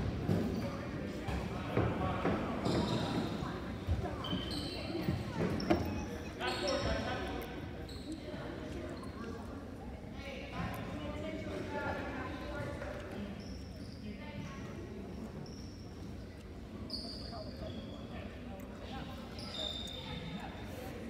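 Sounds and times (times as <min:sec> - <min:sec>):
voices of players and spectators: 0:00.0 - 0:21.0.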